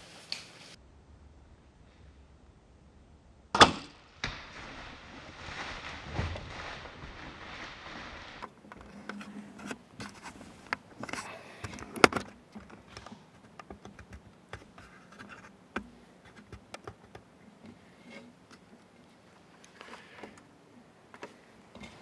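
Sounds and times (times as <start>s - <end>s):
camera handling scrapes and rustles: 7.9s - 13.6s.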